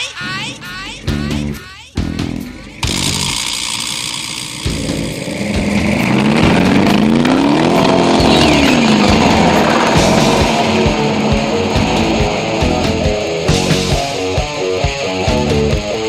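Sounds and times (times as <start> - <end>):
background music: 0.0 - 3.4, 4.7 - 16.0
car engine revving: 0.2 - 16.0.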